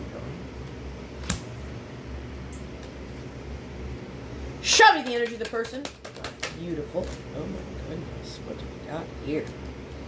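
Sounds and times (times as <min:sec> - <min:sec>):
electric fan whirring: 0:00.0 - 0:10.0.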